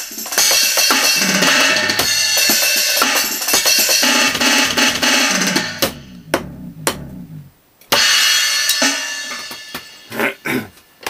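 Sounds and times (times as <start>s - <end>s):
electronic drum kit played fast: 0.4s - 8.1s
tom notes stepping down: 4.0s - 7.5s.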